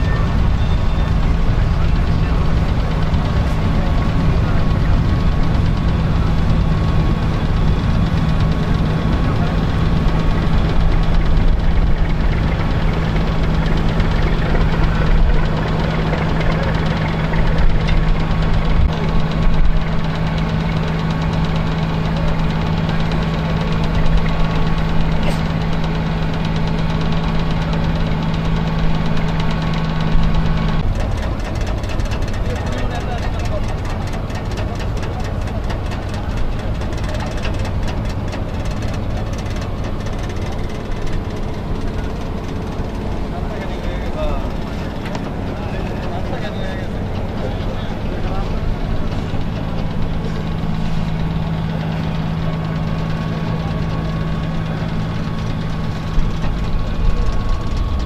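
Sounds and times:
boat engine drone: 0:00.0 - 0:58.0
indistinct voices: 0:00.0 - 0:58.0
steady hum: 0:00.0 - 0:58.0.

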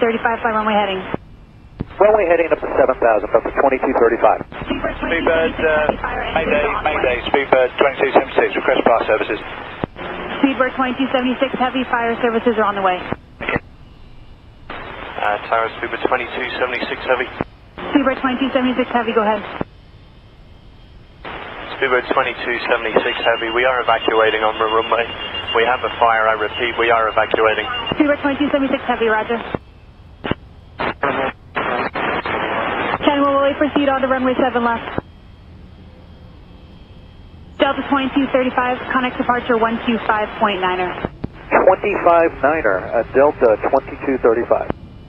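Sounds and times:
low radio hiss: 0:00.0 - 0:35.1, 0:37.5 - 0:44.9
faint steady tones: 0:00.0 - 0:45.0
radio squelch burst: 0:01.9 - 0:13.6, 0:21.2 - 0:29.6, 0:30.2 - 0:35.0
rush of radio static: 0:01.9 - 0:13.6, 0:14.7 - 0:19.7, 0:21.2 - 0:29.6, 0:30.2 - 0:35.0, 0:37.6 - 0:44.7.

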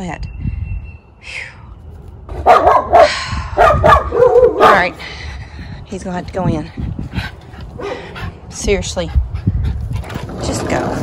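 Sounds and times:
dog barking: 0:02.4 - 0:05.0.

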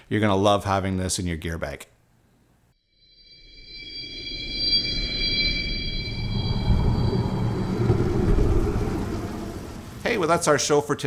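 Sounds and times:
low rumble: 0:03.8 - 0:10.4.

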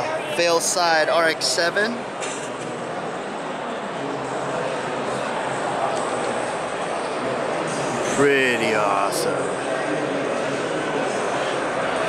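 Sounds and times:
busy exhibition hall hum: 0:00.0 - 0:12.0.

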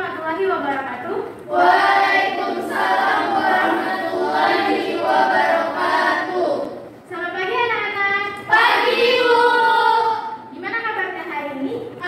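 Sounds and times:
women reciting in unison: 0:01.4 - 0:07.1, 0:08.4 - 0:10.6.

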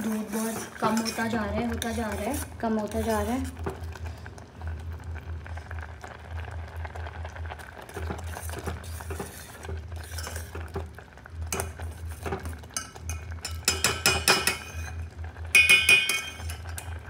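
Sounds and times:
ladle stirring and scraping pot: 0:00.0 - 0:04.0, 0:07.8 - 0:17.0
metal clinks against pot: 0:15.6 - 0:16.9.

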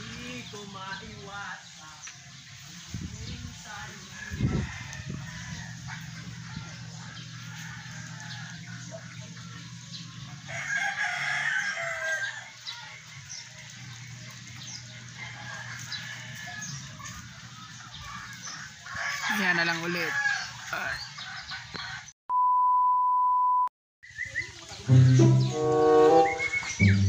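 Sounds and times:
rooster crowing: 0:04.1 - 0:09.2, 0:10.4 - 0:13.0, 0:14.9 - 0:17.0, 0:18.8 - 0:21.0
steady low hum: 0:05.1 - 0:10.6.

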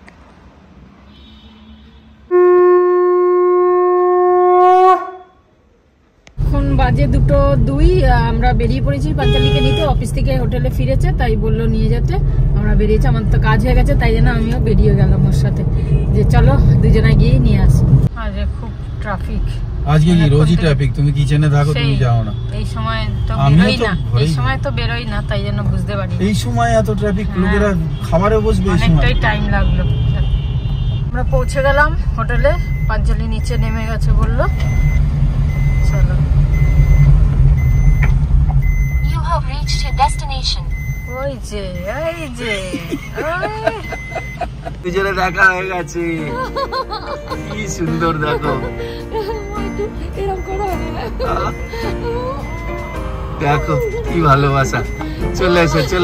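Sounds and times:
car engine and road rumble: 0:00.0 - 0:56.0
conch shell blown: 0:02.3 - 0:05.4
people talking: 0:06.4 - 0:27.7, 0:28.3 - 0:30.3, 0:31.2 - 0:34.6, 0:39.0 - 0:46.5, 0:47.2 - 0:52.5, 0:53.4 - 0:56.0.

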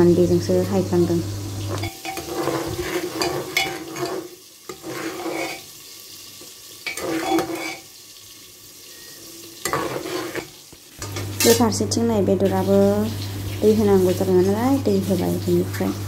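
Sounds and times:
ladle scraping metal pot: 0:01.6 - 0:05.7, 0:06.8 - 0:07.9, 0:09.6 - 0:11.8.

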